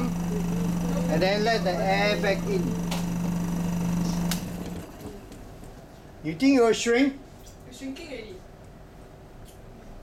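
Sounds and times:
vacuum pump humming: 0.0 - 5.9.

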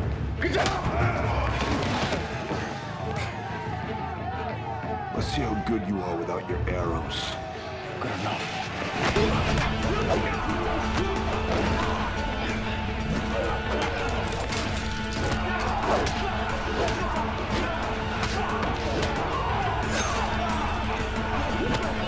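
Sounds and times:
action film music: 0.0 - 22.0.

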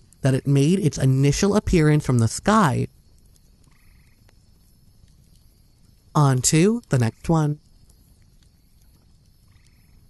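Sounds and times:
small animal trilling: 3.4 - 4.3, 8.4 - 10.0.

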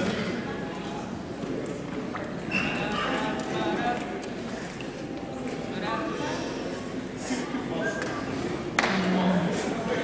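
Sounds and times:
indistinct voices in a hall: 0.0 - 10.0.

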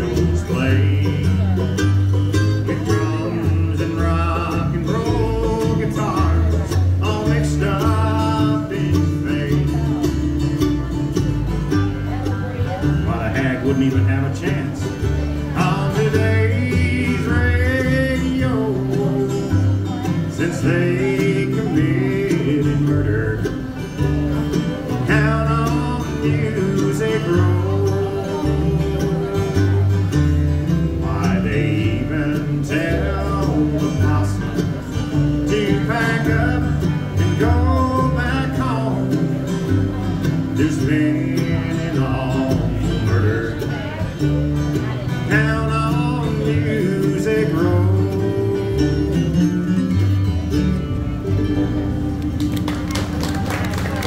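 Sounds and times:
person singing: 0.0 - 10.5, 12.7 - 44.2, 44.8 - 50.2
acoustic guitar: 0.0 - 54.0
banjo: 0.0 - 54.0
mandolin: 0.0 - 54.0
upright bass: 0.0 - 54.0.

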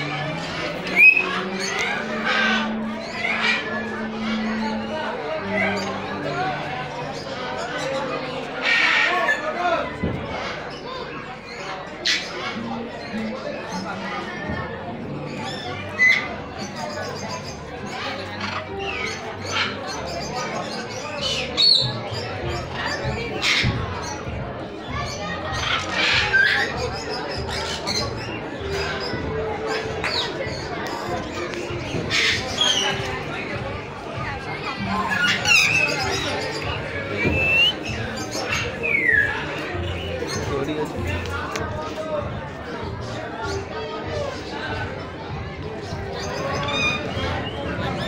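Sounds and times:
crowd chatter: 0.0 - 48.0
parrot squawk: 1.0 - 4.4, 8.6 - 9.4
parrot squawking: 35.0 - 39.3
parrot whistled call: 37.2 - 37.8.

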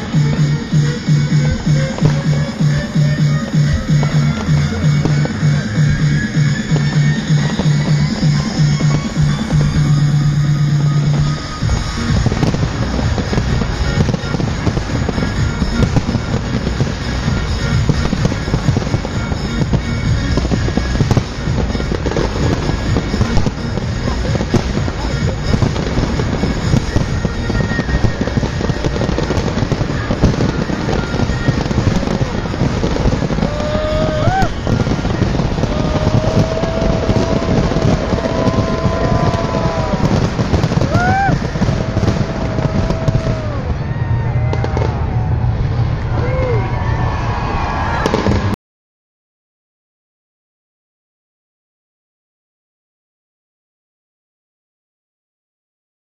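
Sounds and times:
fireworks bangs and crackling: 0.0 - 48.6
fireworks whistling: 0.0 - 48.6.

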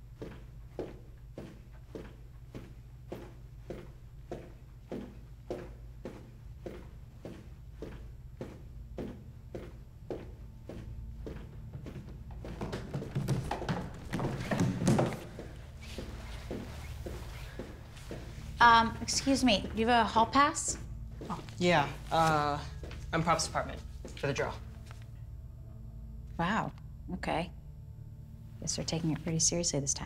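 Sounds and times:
low steady hum: 0.0 - 30.0
footsteps on hard floor: 0.1 - 25.0
jumbled knocks: 11.8 - 15.6.

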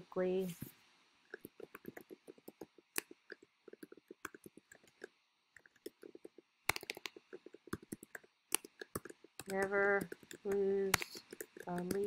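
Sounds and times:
computer keyboard typing: 1.3 - 12.0.

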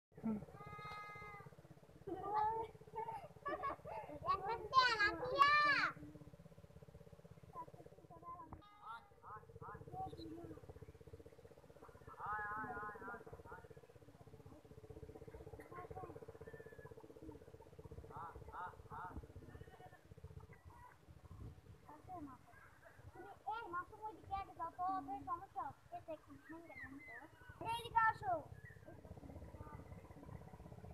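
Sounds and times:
child's long held call: 0.2 - 1.5
low steady hum: 0.2 - 30.9
faint squeaky chirps: 26.1 - 30.1.

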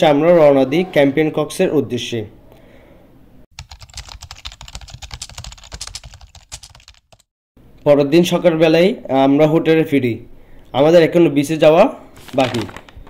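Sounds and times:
rapid irregular clicking: 3.6 - 7.3.

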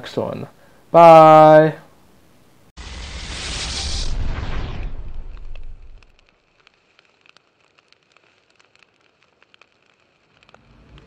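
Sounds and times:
faint fire crackling: 2.0 - 11.0
loud rush of noise: 2.8 - 6.1
scattered clicks: 5.3 - 11.0.

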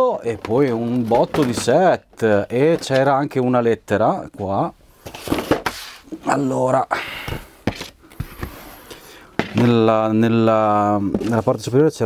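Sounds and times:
cardboard rustling: 0.2 - 3.1, 5.0 - 6.1.

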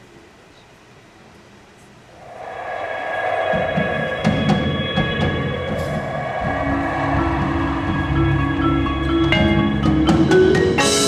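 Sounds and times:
low rumble: 2.2 - 9.8
low held chord drone: 3.1 - 10.2
percussion ensemble music: 3.5 - 11.0.

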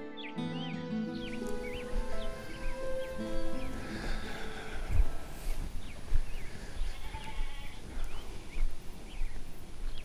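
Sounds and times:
small birds chirping: 0.0 - 10.0
farm animal bleating: 6.8 - 7.9.

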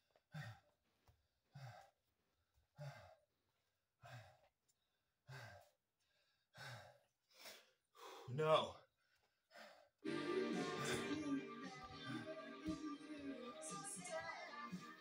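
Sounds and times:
man breathing hard: 0.1 - 2.0, 2.7 - 3.2, 4.0 - 4.5, 5.2 - 8.3, 9.0 - 10.0.

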